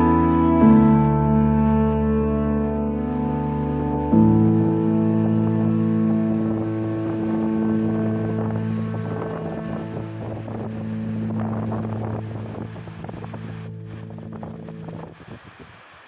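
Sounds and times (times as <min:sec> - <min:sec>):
background music chord: 0:00.0 - 0:15.0
wind buffeting microphone: 0:00.0 - 0:16.0.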